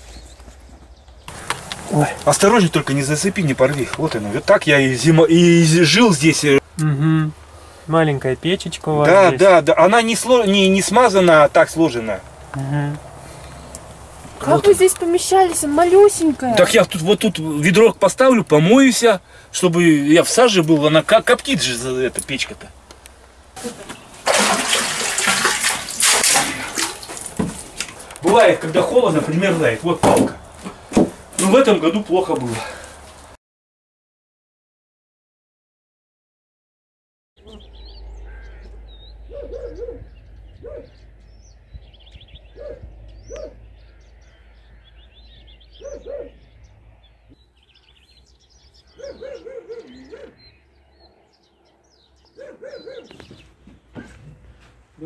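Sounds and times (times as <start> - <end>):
small birds chirping: 0.0 - 24.2, 37.4 - 54.2
water pouring and splashing: 1.3 - 3.8, 23.6 - 28.5
crows cawing: 38.1 - 39.9, 43.3 - 46.8.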